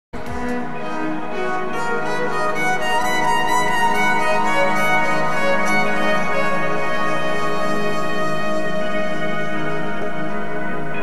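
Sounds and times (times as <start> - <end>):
electronic backing music: 0.2 - 11.0
violin sustained notes: 0.2 - 11.0.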